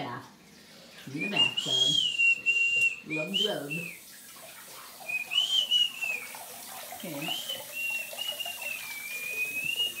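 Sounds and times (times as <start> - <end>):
faucet running water: 0.0 - 10.0
thin high whistling tone: 1.2 - 4.0, 5.0 - 6.4, 7.2 - 10.0.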